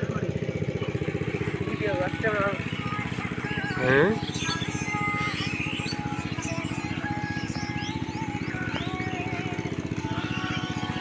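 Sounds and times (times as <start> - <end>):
small engine running: 0.0 - 11.0
bird chirps: 3.4 - 11.0.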